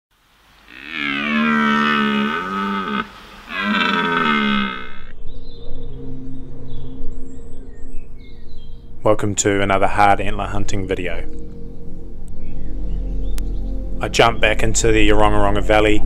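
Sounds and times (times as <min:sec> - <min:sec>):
elk bugling: 0:00.6 - 0:05.2
low steady drone: 0:02.1 - 0:16.0.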